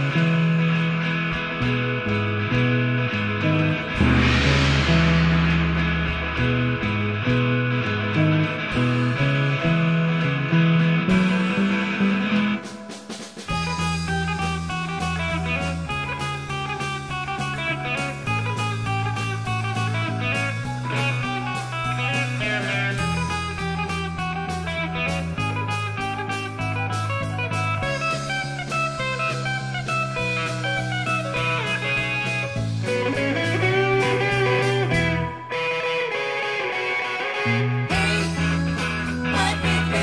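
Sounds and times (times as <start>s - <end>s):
bass guitar: 0.0s - 40.0s
electric guitar: 0.0s - 40.0s
drum kit: 3.3s - 8.9s, 11.1s - 35.4s, 37.9s - 40.0s.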